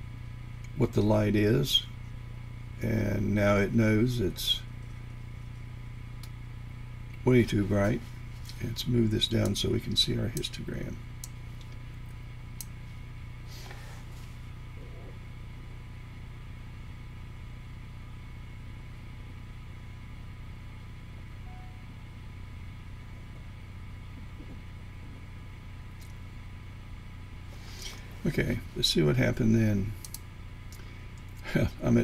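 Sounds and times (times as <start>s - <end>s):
low room hum: 0.0s - 32.0s
faint thin tone: 21.4s - 22.0s.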